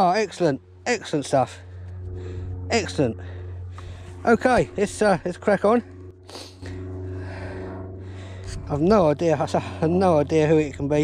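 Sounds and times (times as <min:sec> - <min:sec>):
man breathing: 0:01.5 - 0:04.3, 0:06.2 - 0:08.8.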